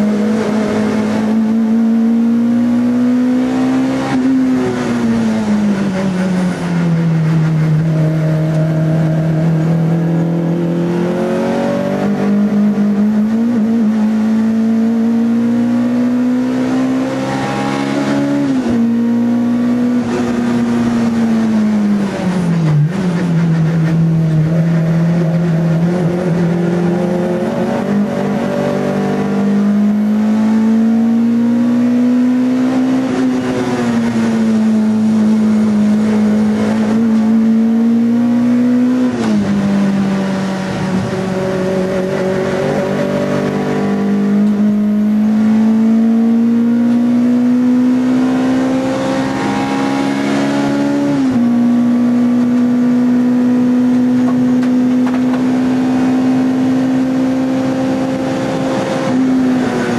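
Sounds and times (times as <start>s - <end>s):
race car engine from inside cabin: 0.0s - 59.9s.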